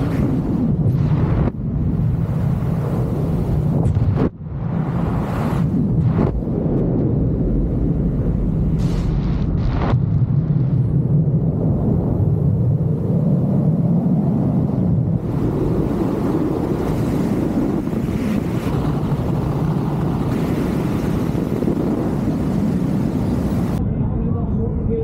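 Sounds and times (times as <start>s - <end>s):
wind rushing over microphone: 0.0s - 25.0s.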